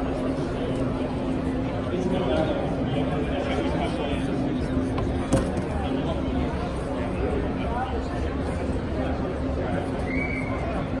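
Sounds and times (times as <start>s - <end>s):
indistinct crowd chatter: 0.0s - 11.0s.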